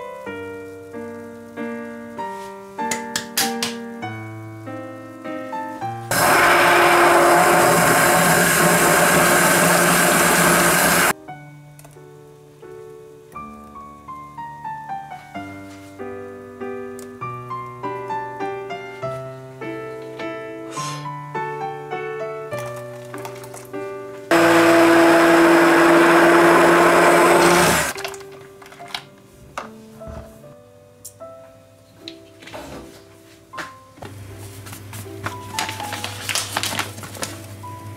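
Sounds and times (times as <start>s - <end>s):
soft background music: 0.0s - 6.1s, 11.1s - 24.3s, 28.0s - 37.9s
immersion blender running: 6.1s - 11.1s, 24.3s - 28.0s.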